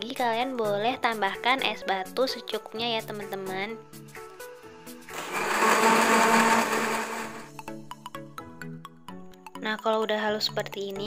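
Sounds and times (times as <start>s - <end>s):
light background music plucked notes: 0.0s - 11.0s
blender whirring: 5.1s - 7.5s.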